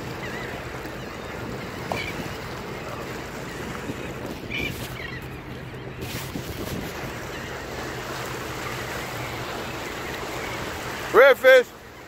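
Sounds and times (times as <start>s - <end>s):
wind on microphone: 1.3s - 7.3s.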